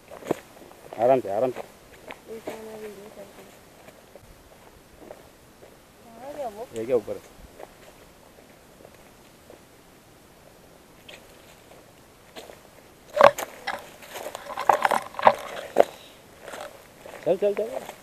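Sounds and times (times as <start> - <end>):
footsteps crunching on dry leaves: 11.3 - 18.0.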